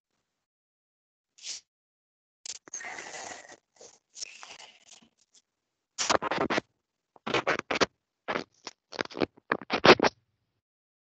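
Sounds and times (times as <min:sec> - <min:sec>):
scratching rustling noises: 0:06.0 - 0:10.1.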